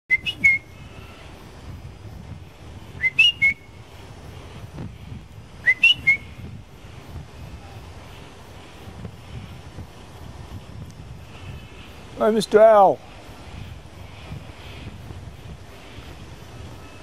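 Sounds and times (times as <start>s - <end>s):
bird whistled call: 0.1s - 1.2s, 3.0s - 3.8s, 5.6s - 6.4s.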